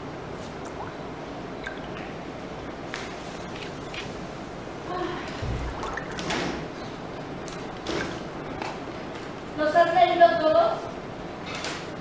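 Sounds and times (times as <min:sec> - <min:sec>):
room noise: 0:00.0 - 0:12.0.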